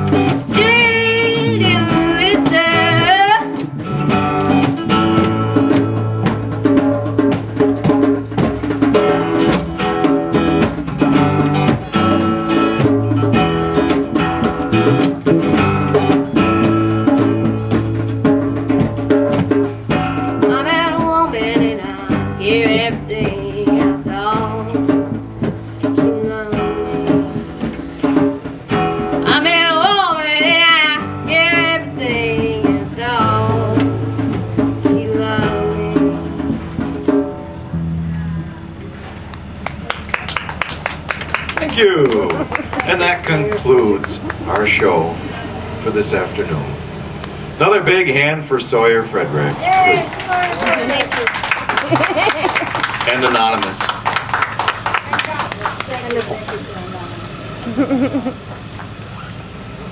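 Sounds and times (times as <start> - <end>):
strummed acoustic guitar: 0.0 - 39.8, 41.0 - 59.9
drums: 0.0 - 59.9.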